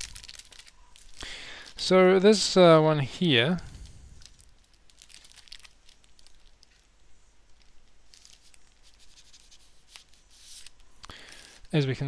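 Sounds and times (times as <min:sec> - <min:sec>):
paper rustling and crinkling: 0:00.0 - 0:01.8, 0:03.7 - 0:06.9, 0:07.5 - 0:11.0.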